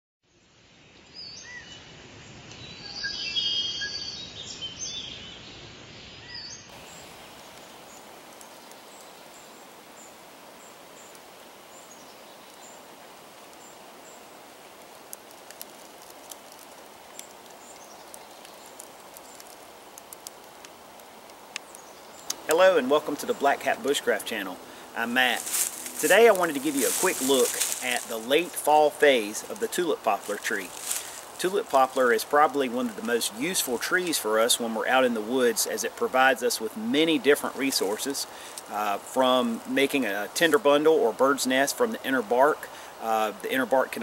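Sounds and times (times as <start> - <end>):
faint steady hiss: 0.3 - 44.0
small clicks: 14.8 - 22.4.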